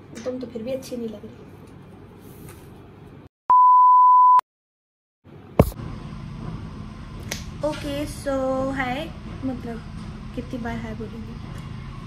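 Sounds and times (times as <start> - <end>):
electronic censor bleep: 3.5 - 4.4.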